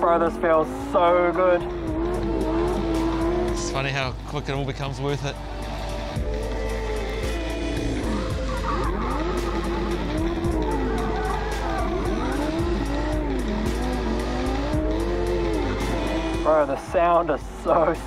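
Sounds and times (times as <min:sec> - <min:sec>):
car engine revving: 0:00.0 - 0:18.0
tyres squealing: 0:07.4 - 0:16.8.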